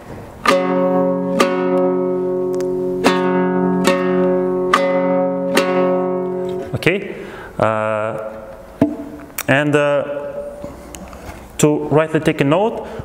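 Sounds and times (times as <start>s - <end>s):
two-string lute strummed: 0.4s - 7.0s, 8.0s - 9.3s.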